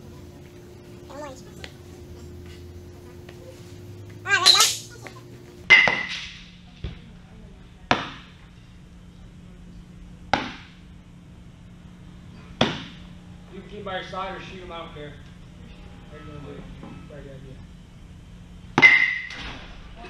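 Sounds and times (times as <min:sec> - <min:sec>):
high wavering voice: 0:01.0 - 0:02.2, 0:03.4 - 0:05.4
balls striking catcher's gear: 0:05.7 - 0:06.4, 0:12.6 - 0:13.0, 0:18.8 - 0:19.4.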